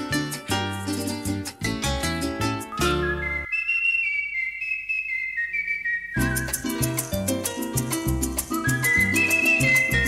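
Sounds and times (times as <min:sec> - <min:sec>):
plucked-string accompaniment: 0:00.0 - 0:03.5, 0:06.2 - 0:10.0
person whistling a slow melody: 0:02.6 - 0:07.2, 0:08.4 - 0:10.0.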